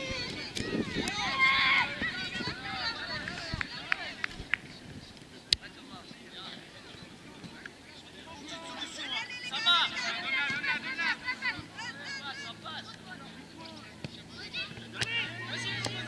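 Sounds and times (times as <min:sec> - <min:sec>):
children shouting: 0:00.0 - 0:04.2, 0:08.5 - 0:12.7.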